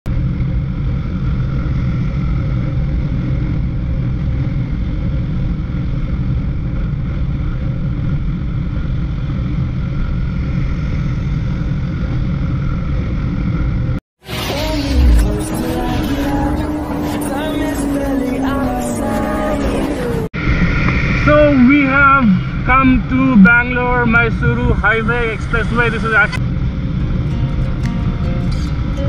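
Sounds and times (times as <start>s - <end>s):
wind rumble on microphone: 0.1s - 14.0s, 19.5s - 25.0s
motorcycle engine droning: 0.1s - 29.0s.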